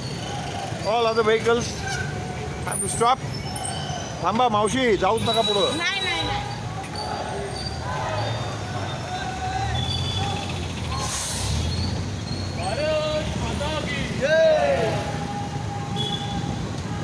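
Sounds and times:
bus engine rumble: 0.0 - 14.3
traffic: 0.0 - 17.0
people shouting: 6.0 - 10.6, 14.2 - 15.4
air brakes hiss: 10.9 - 11.8.

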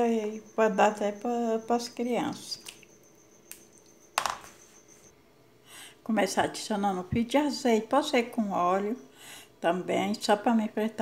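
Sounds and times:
spoon tapping plastic bowl: 4.1 - 4.6.

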